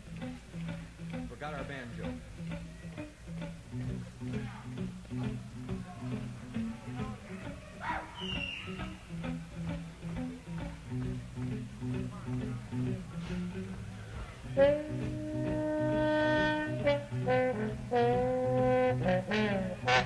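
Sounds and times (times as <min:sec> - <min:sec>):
jazz band playing: 0:08.7 - 0:20.0
bass riff of low notes: 0:08.8 - 0:20.0.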